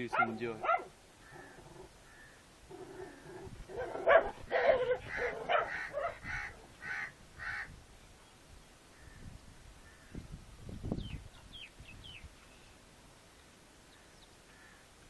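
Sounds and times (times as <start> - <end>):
harsh animal calls: 0.6 - 7.7.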